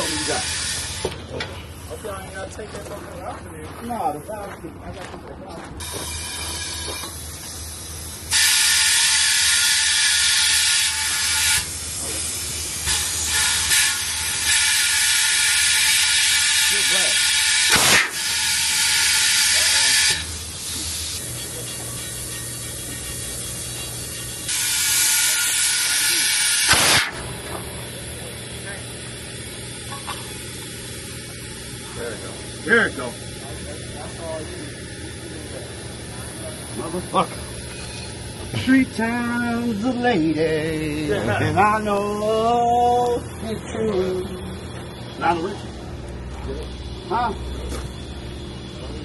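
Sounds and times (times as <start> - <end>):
compressed air hissing: 0.0 - 2.4, 5.8 - 42.4
sharp pops: 17.7 - 18.2, 26.7 - 27.3.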